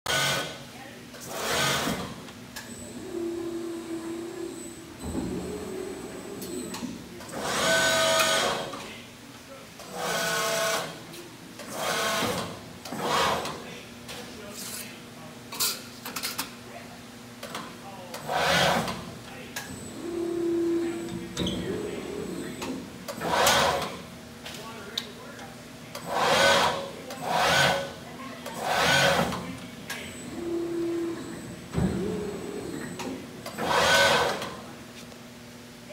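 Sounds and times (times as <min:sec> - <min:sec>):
steady machine hum: 0:00.1 - 0:15.5, 0:16.6 - 0:35.9
machine drives whining: 0:01.4 - 0:08.8, 0:19.6 - 0:24.1, 0:28.5 - 0:34.7.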